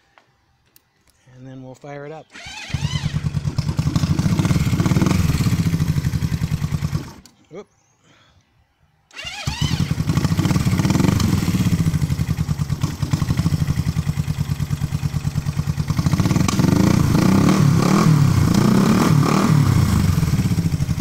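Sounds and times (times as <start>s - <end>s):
motorcycle engine starting: 2.2s - 7.3s, 9.1s - 21.0s
motorcycle engine revving: 2.3s - 7.3s, 9.1s - 21.0s
motorcycle engine idling: 2.6s - 7.2s, 9.5s - 17.8s, 19.8s - 21.0s.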